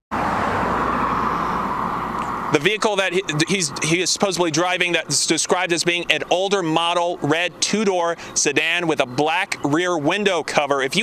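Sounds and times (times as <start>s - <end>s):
road traffic rushing: 0.1s - 11.0s.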